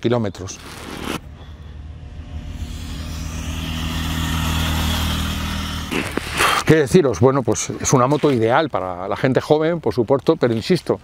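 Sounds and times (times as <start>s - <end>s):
motorcycle engine passing by: 0.9s - 6.8s.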